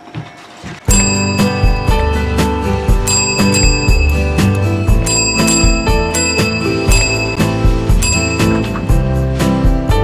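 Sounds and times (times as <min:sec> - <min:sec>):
background music with steady beat: 0:00.1 - 0:10.0
desk call bell ringing: 0:00.9 - 0:09.1.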